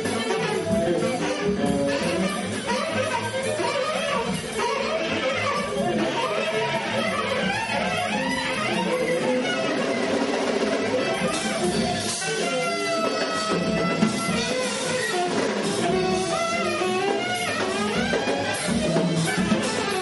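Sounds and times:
bowed viola: 0:00.0 - 0:20.0
free jazz ensemble improvising: 0:00.0 - 0:20.0.

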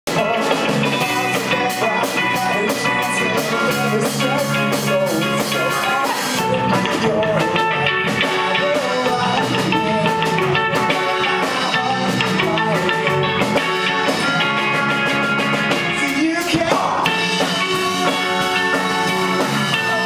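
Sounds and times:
drum kit: 0:00.1 - 0:20.0
electric bass: 0:00.1 - 0:20.0
electric guitars: 0:00.1 - 0:20.0.

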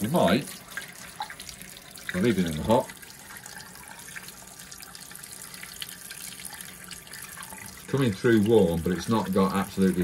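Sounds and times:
tap water splashing into basin: 0:00.0 - 0:10.0.

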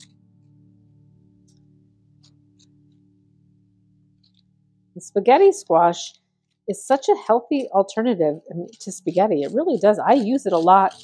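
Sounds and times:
faint guitar-like music: 0:00.0 - 0:11.0
spoon scraping squash: 0:06.9 - 0:11.0.

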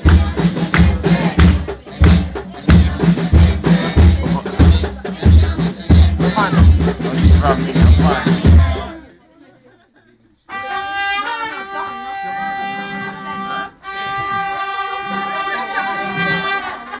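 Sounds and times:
button accordion notes: 0:07.3 - 0:08.5.

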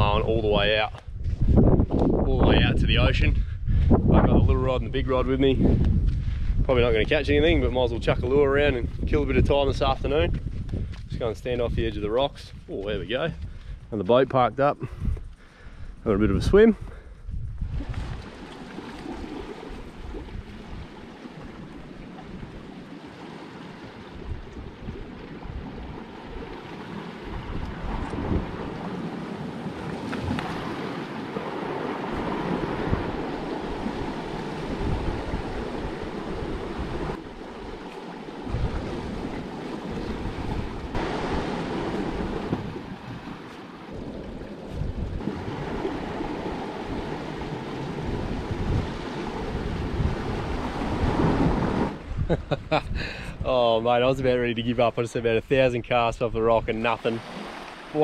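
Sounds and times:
wind buffeting microphone: 0:00.0 - 0:58.0
surf washing over rocks: 0:18.1 - 0:52.1, 0:56.7 - 0:58.0.

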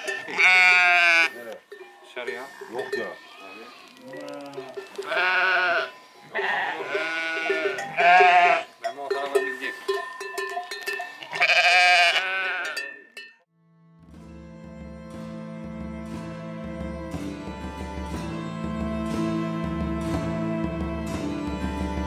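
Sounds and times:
sheep bleating: 0:00.0 - 0:01.6, 0:02.4 - 0:08.8, 0:11.2 - 0:12.8
music: 0:13.5 - 0:22.0.

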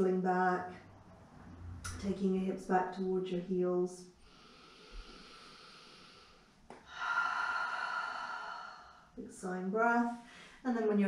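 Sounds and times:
woman breathing and sighing: 0:04.2 - 0:09.2.

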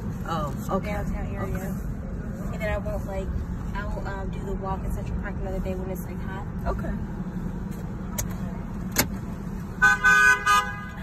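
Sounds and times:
city traffic rumble: 0:00.0 - 0:11.0
car horn honking: 0:09.8 - 0:11.0.

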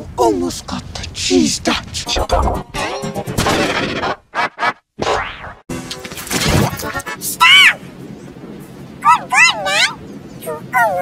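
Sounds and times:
distorted pitch-shifted speech: 0:00.2 - 0:02.8.

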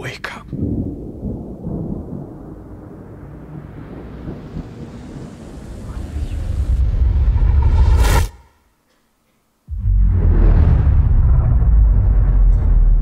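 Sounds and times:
deep rumble: 0:00.5 - 0:08.5, 0:09.7 - 0:13.0
rising whoosh: 0:03.0 - 0:08.6, 0:09.7 - 0:13.0.

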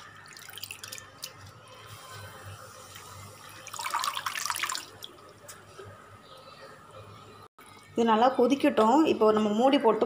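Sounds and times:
water bubbling in a pan: 0:00.0 - 0:05.2.

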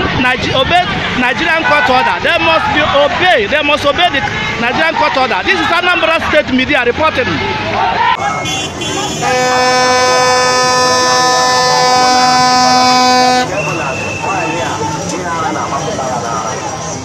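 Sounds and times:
crowd voices: 0:00.0 - 0:17.0
street noise: 0:00.0 - 0:17.0
horn long steady note: 0:08.9 - 0:13.6.

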